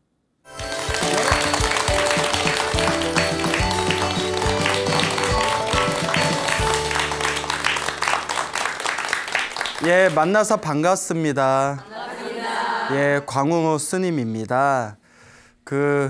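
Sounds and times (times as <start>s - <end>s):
instrumental music with held notes: 0.5s - 8.9s
studio audience clapping: 0.5s - 10.9s.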